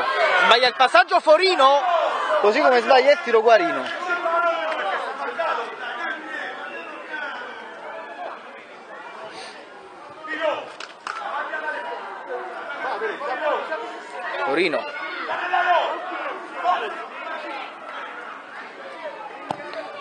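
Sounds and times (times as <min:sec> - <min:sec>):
crowd talking and calling out: 0:00.0 - 0:20.0.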